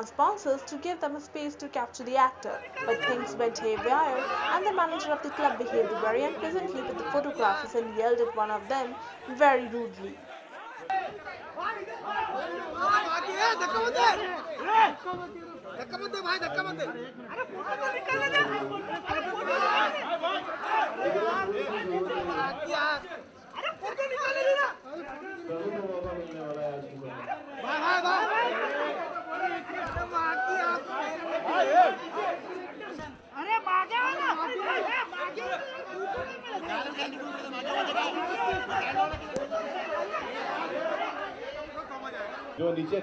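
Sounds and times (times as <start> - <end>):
crowd talking and calling out: 0.0 - 43.0.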